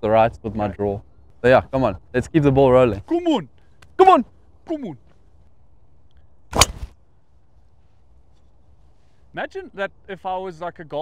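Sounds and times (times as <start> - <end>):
golf driver striking ball: 6.5 - 6.9.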